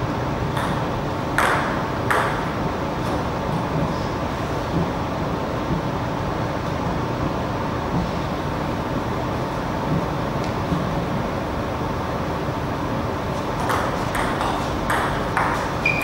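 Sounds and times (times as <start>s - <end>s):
steady background hum: 0.0s - 16.0s
table tennis ball bouncing: 0.5s - 0.8s, 1.4s - 2.5s, 13.6s - 16.0s.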